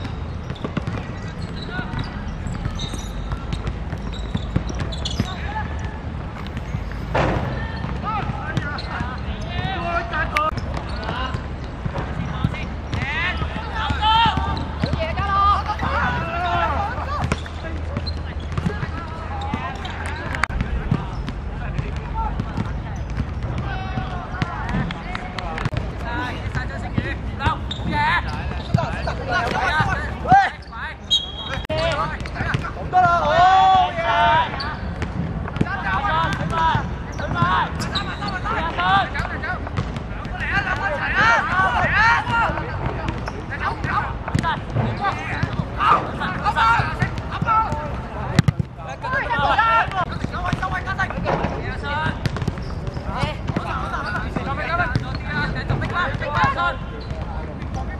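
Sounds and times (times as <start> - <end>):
players shouting: 0.0 - 57.9.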